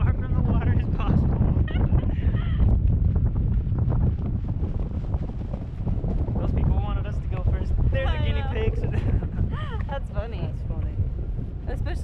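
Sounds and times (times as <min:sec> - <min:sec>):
wind buffeting microphone: 0:00.0 - 0:12.0
person's voice: 0:08.0 - 0:08.9.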